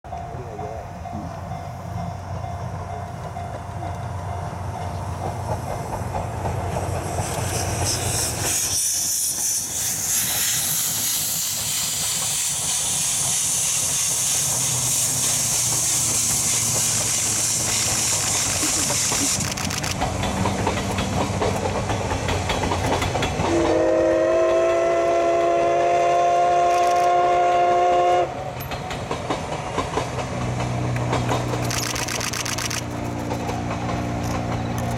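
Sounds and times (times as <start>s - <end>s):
train carriages rolling by: 0.1s - 34.9s
steam locomotive hissing: 0.5s - 34.9s
steam whistle blast: 23.5s - 28.4s.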